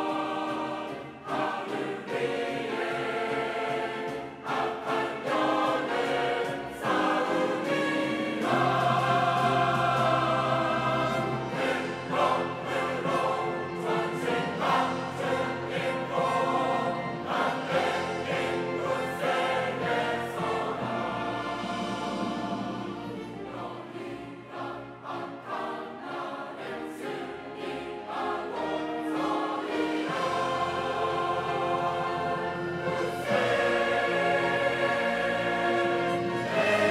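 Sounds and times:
choir singing an anthem: 0:00.0 - 0:36.9.

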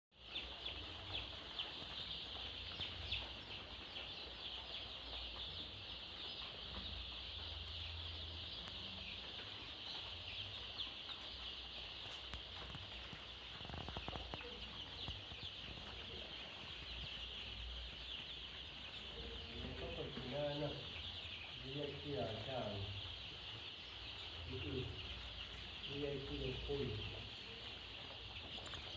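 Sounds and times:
chickens calling: 0:00.2 - 0:28.9.

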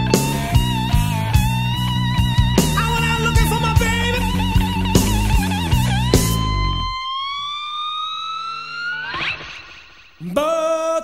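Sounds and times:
bass and drums: 0:00.0 - 0:07.0
slide guitar lead: 0:00.0 - 0:10.2.

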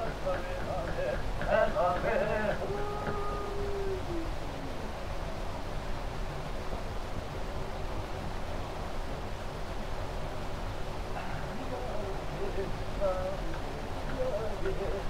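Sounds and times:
tape recording hiss: 0:00.0 - 0:15.0.

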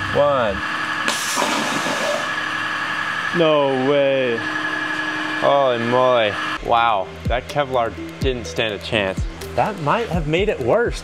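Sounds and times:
steady high whine: 0:00.0 - 0:11.0
waterjet stream hissing: 0:00.2 - 0:06.6.

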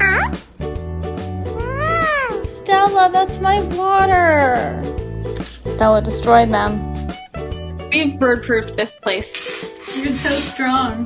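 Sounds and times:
background music: 0:00.0 - 0:11.0
parakeet mimicking speech: 0:01.6 - 0:02.5.

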